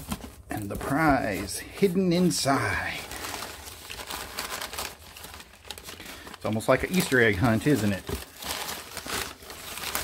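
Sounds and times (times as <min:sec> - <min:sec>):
packing paper rustling: 0:00.0 - 0:10.0.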